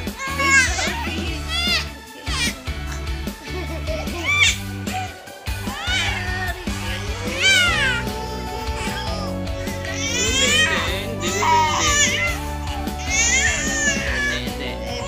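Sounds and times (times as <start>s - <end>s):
background music: 0.0s - 15.0s
baby squealing and crying: 0.1s - 3.0s, 3.9s - 15.0s.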